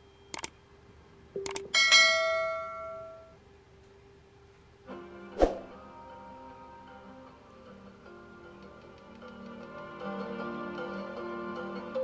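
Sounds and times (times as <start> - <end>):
quick clicks: 0.3 - 0.5, 1.4 - 1.6.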